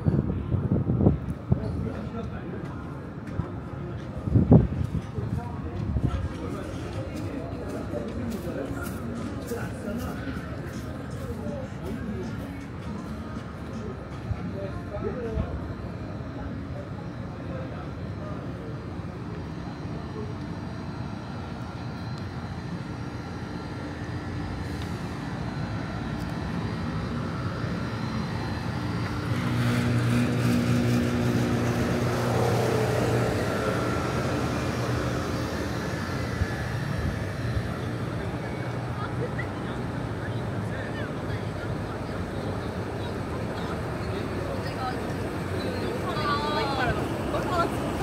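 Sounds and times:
heavy engine: 0.0s - 48.0s
traffic engines rumbling: 0.0s - 48.0s.

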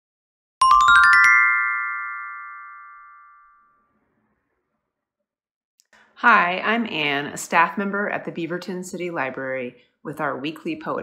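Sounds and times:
ringing bell-like chord: 0.6s - 3.9s.

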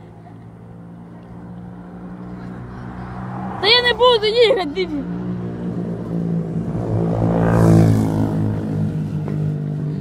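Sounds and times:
engine running steadily: 8.1s - 10.0s.

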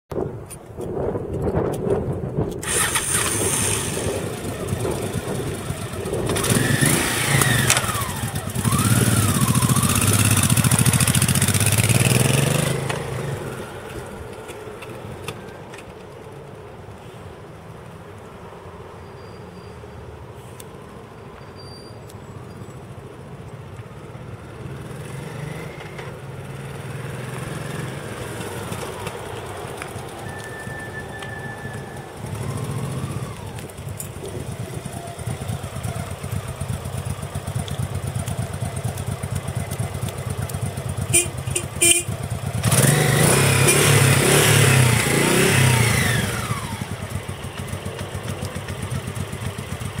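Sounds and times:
motorcycle engine running: 2.6s - 14.2s, 31.8s - 50.0s.

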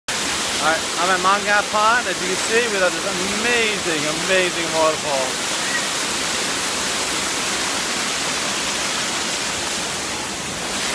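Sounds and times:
waterfall rushing over rock: 0.1s - 10.9s.

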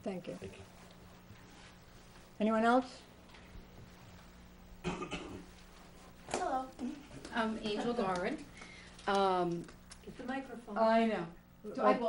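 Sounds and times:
faint steady hum: 0.0s - 12.0s
person coughing: 4.8s - 5.4s.

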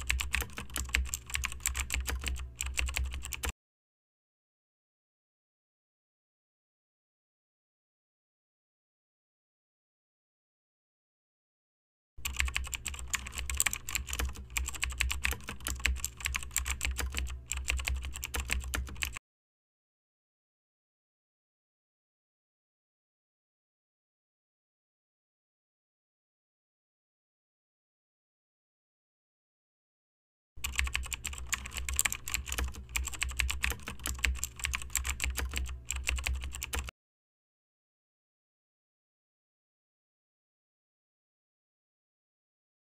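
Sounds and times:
keyboard typing clicks: 0.0s - 3.5s, 12.2s - 19.2s, 30.6s - 36.9s
low steady hum: 30.6s - 36.9s.

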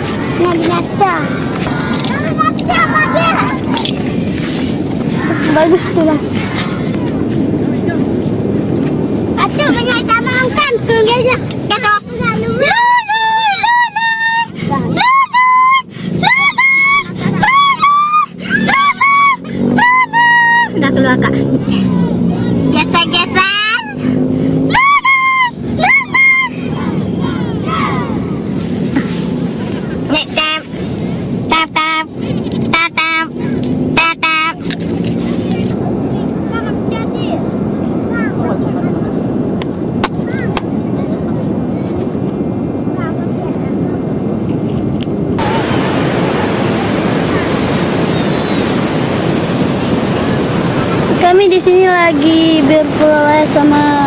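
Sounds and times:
ocean surf rushing: 0.0s - 54.0s
wind on microphone: 0.0s - 54.0s
high-pitched voice calling out: 30.1s - 30.7s, 31.5s - 33.4s, 34.0s - 34.7s.

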